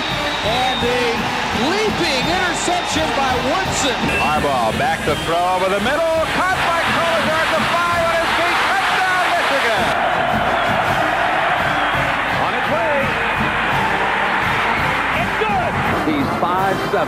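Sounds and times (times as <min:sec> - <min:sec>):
background music: 0:00.0 - 0:17.0
stadium crowd cheering: 0:00.0 - 0:17.0
announcer's voice: 0:00.5 - 0:09.9.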